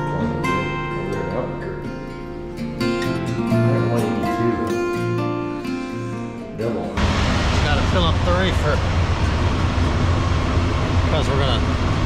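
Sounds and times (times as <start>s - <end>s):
acoustic guitar music: 0.0s - 7.1s
diesel truck engines idling: 7.0s - 12.0s.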